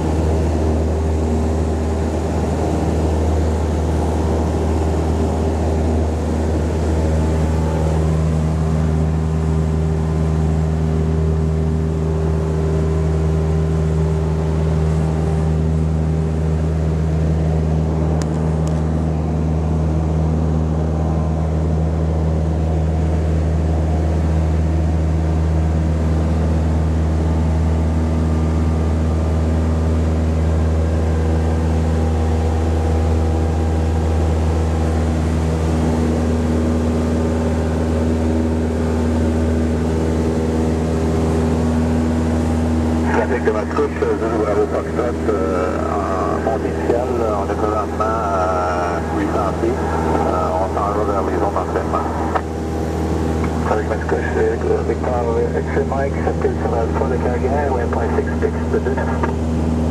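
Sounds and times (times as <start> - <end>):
light aircraft engine droning: 0.0 - 59.9.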